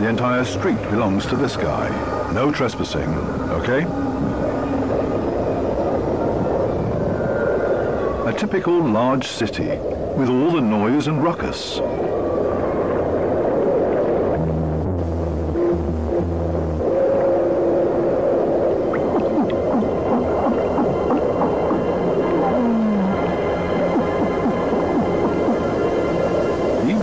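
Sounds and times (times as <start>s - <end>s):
low pulsed fish calls: 11.8s - 27.0s
short falling tone: 14.4s - 17.2s
fish calls: 18.9s - 27.0s.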